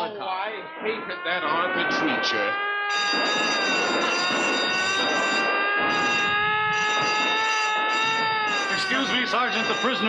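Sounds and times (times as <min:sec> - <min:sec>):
alarm siren steady high tone: 0:00.0 - 0:10.0.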